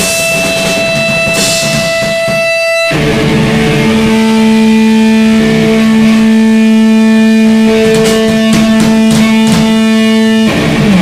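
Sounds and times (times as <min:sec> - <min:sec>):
electric guitar droning chord: 0:00.0 - 0:11.0
live rock band music: 0:00.0 - 0:11.0.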